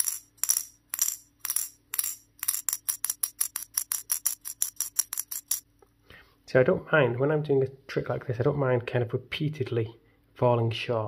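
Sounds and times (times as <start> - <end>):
metal ball clinking on steel: 0.0 - 5.7.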